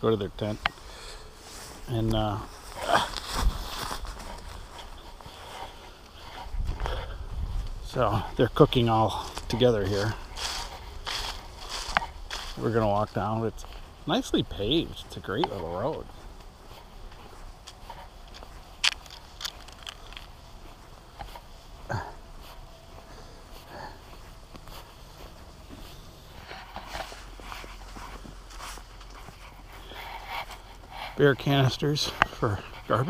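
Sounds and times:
footsteps on gravel and leaves: 0:00.0 - 0:33.0
low microphone rumble: 0:06.3 - 0:13.2.

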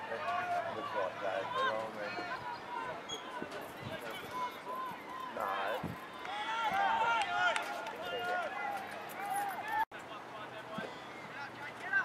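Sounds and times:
footballers shouting: 0:00.0 - 0:09.8.

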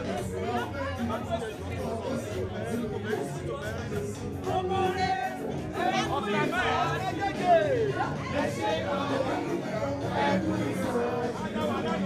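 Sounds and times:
party music: 0:00.0 - 0:12.0
people chattering: 0:00.0 - 0:12.0.

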